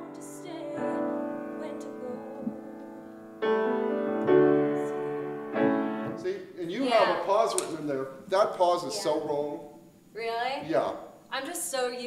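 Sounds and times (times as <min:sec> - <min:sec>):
piano chords ringing: 0:00.0 - 0:07.5.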